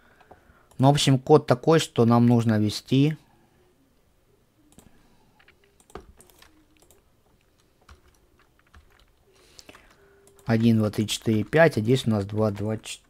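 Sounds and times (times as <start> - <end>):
mouse and keyboard clicks: 4.7 - 12.7.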